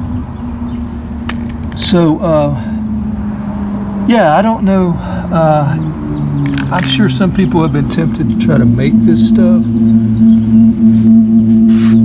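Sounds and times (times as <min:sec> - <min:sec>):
loud low hum: 0:00.0 - 0:12.0.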